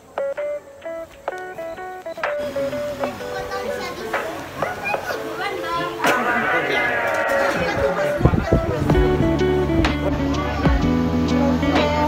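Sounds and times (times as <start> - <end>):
background music: 0.0 - 12.0
women chattering and laughing: 2.4 - 9.3.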